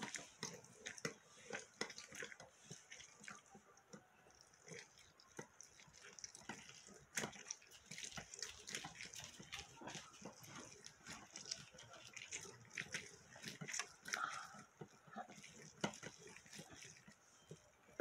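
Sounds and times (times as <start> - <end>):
wet squelching of juicing oranges: 0.0 - 18.0.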